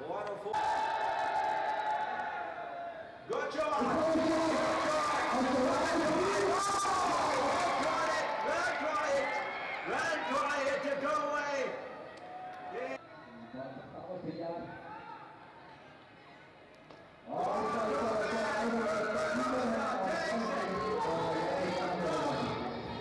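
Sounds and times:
people talking and calling out: 0:03.0 - 0:23.0.

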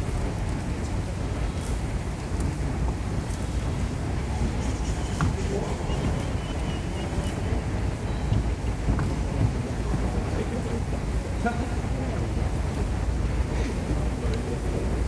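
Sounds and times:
faint voices murmuring: 0:00.0 - 0:15.0
low background rumble: 0:00.0 - 0:15.0.

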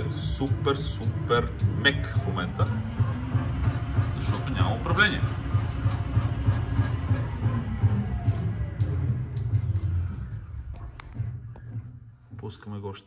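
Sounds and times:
low pulsing machine rumble: 0:00.0 - 0:11.5.

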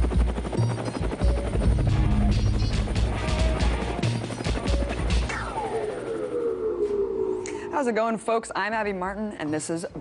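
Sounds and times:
helicopter rotor chop: 0:00.0 - 0:06.6.

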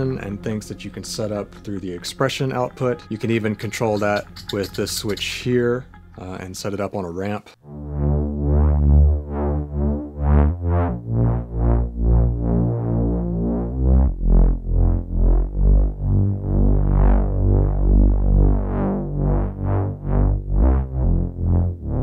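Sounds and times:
low synth bass line: 0:07.6 - 0:22.0
synthesizer chords with phaser: 0:07.6 - 0:22.0.

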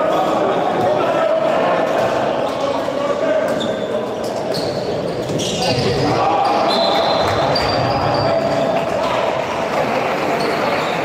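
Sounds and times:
voices in a hall: 0:00.0 - 0:11.0
shoes squeaking on floor: 0:03.4 - 0:08.8.

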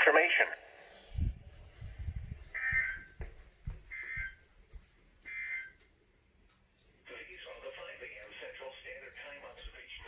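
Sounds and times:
footsteps and handling thumps: 0:02.1 - 0:06.0.

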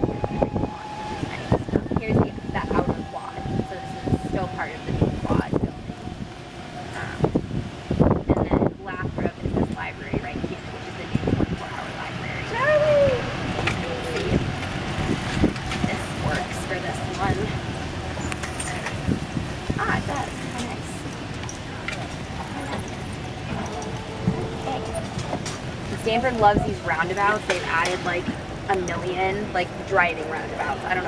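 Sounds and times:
steady thin whine: 0:00.0 - 0:08.6
golf cart rumbling ride noise: 0:00.0 - 0:31.0
wind on microphone: 0:00.0 - 0:31.0
low talk: 0:19.7 - 0:31.0.

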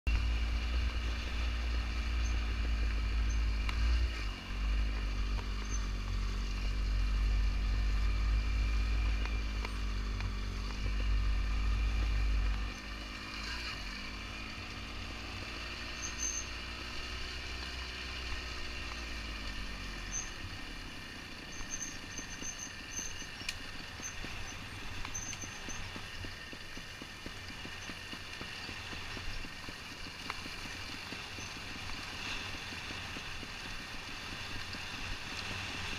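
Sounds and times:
motorcycle engine at low revs: 0:00.1 - 0:35.9.

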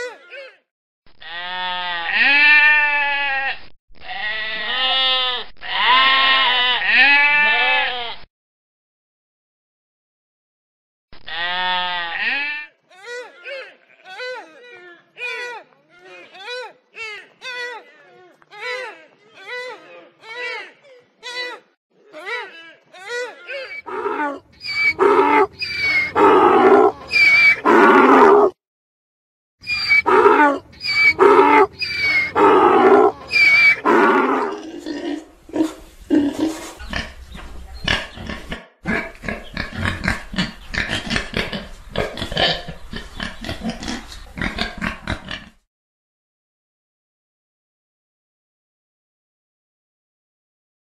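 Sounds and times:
deer calls: 0:23.1 - 0:28.5, 0:29.6 - 0:34.6
wild boar grunting: 0:23.7 - 0:28.6, 0:29.8 - 0:45.6.

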